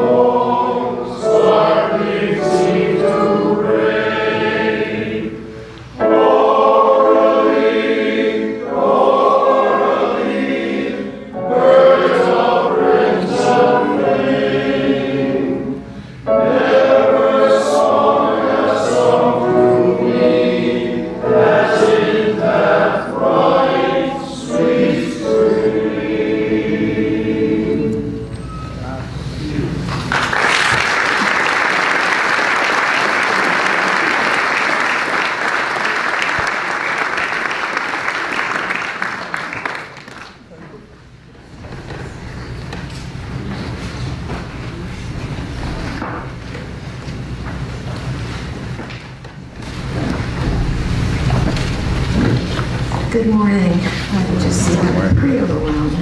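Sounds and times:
men's choir singing a hymn: 0.0s - 28.7s
congregation applauding: 29.9s - 40.5s.

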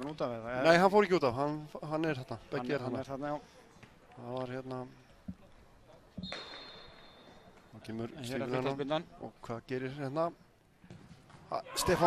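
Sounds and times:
referee's whistle blast: 6.2s - 7.4s.

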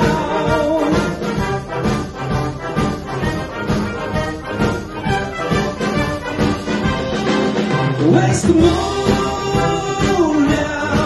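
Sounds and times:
wind band playing: 0.0s - 11.0s.

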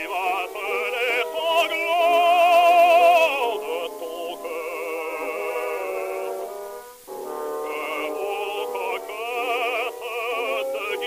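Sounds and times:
tenor singing opera: 0.0s - 11.0s.

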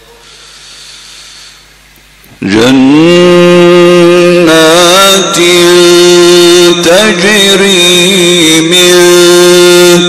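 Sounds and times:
faint hiss: 0.0s - 2.6s
man chanting into microphone: 2.4s - 10.0s.

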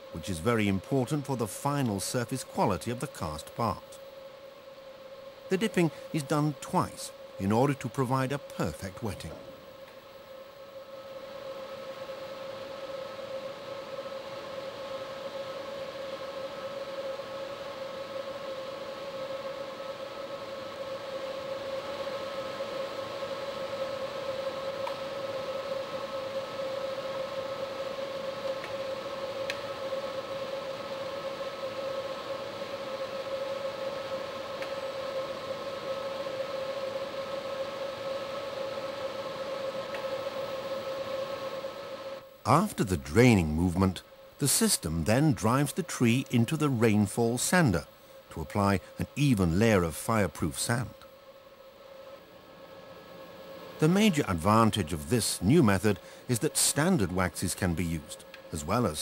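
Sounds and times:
machine motor whine and hum: 0.0s - 59.0s.

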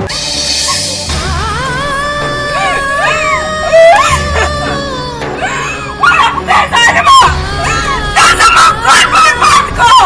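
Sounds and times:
background film music: 0.0s - 10.0s
woman wailing and crying out: 2.2s - 10.0s.

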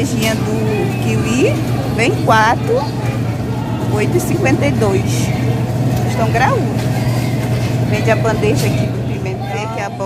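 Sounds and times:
woman's voice: 0.0s - 2.9s, 3.9s - 5.3s, 6.1s - 6.7s, 7.9s - 10.0s
refrigeration hum: 0.0s - 10.0s.

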